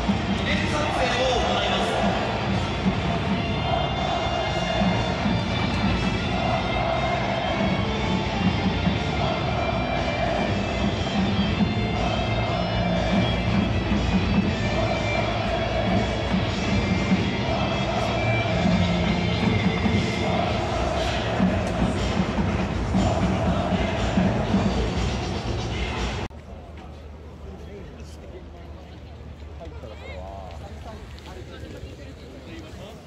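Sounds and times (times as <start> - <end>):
music in a stadium: 0.0 - 26.3
crowd noise: 0.0 - 33.0.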